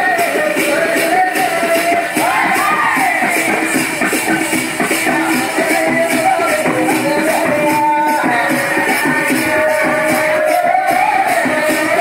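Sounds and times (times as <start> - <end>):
jingling percussion: 0.0 - 12.0
rhythmic drumming: 0.0 - 12.0.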